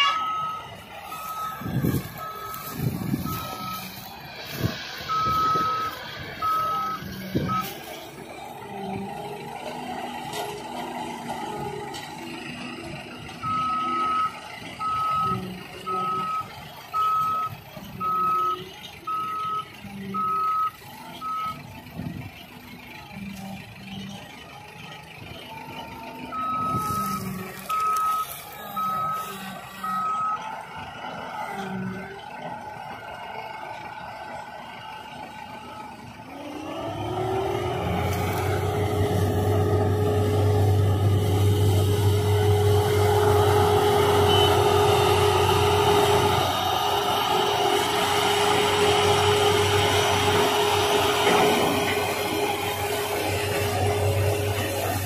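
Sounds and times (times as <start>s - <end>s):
reversing alarm beeping: 0.0s - 22.1s, 24.8s - 32.9s, 33.7s - 55.0s
harvester and tractor engines running: 0.0s - 55.0s
engine revving up: 36.3s - 55.0s.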